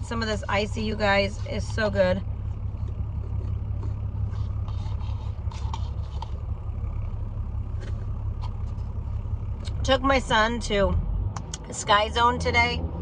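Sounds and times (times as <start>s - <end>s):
car cabin rumble while driving: 0.0s - 13.0s.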